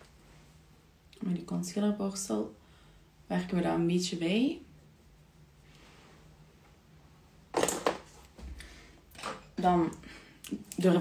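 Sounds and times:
makeup items rustling and clattering: 7.5 - 8.4.

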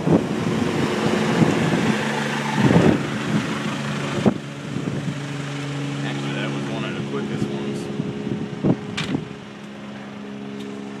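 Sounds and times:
helicopter humming: 0.0 - 11.0.

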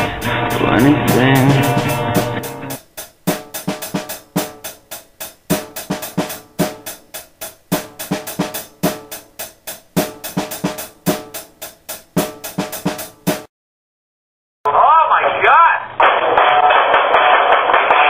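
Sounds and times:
drum kit playing a steady beat: 0.0 - 13.5.

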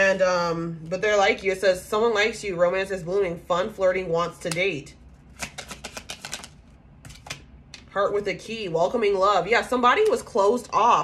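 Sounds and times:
cards being shuffled: 5.1 - 7.5.

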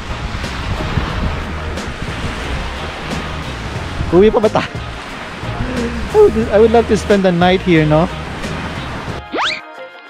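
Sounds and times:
wind rumbling on microphone: 0.0 - 9.2.

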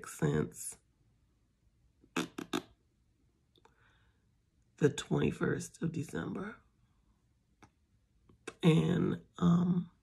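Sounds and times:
woman's short vocal sounds: 2.2 - 2.7.

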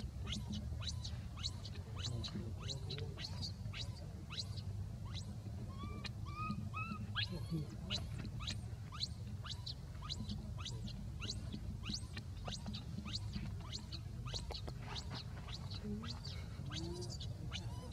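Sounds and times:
baby macaque coo calls: 0.0 - 17.9
low background hum: 0.0 - 17.9.

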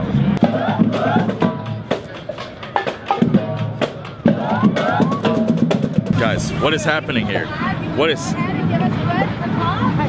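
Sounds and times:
marching band playing: 0.0 - 8.8
drum strikes: 0.2 - 6.7.

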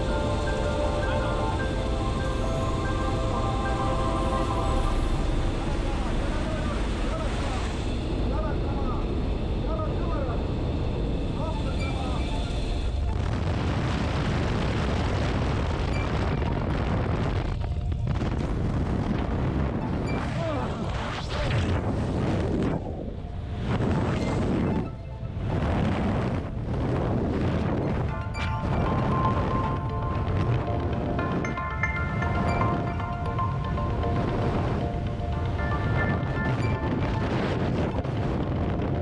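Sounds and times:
plane engine droning: 0.0 - 14.4
wind buffeting microphone: 21.6 - 39.0.

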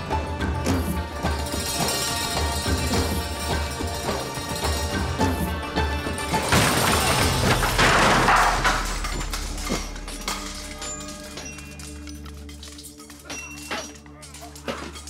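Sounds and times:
loud crash: 6.4 - 10.5
sharp metallic clinks: 9.0 - 15.0.

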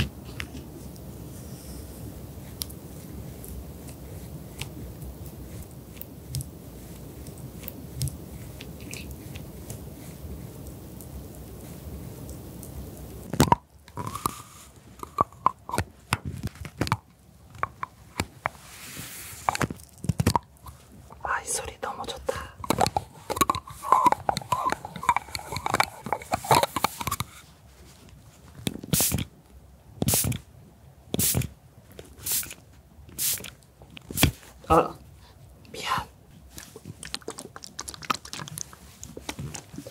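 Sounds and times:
spatula scraping powder: 18.5 - 19.7
recorder being handled and tapped: 22.6 - 27.3.

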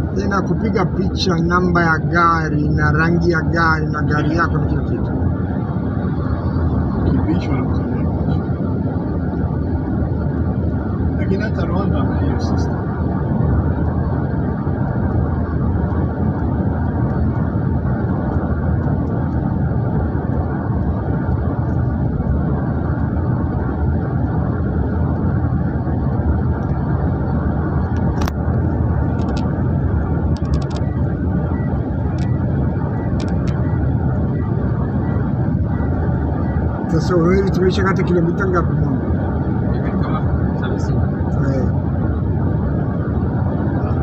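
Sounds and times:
vehicle tyre and engine rumble: 0.0 - 44.0
wind: 0.0 - 44.0.

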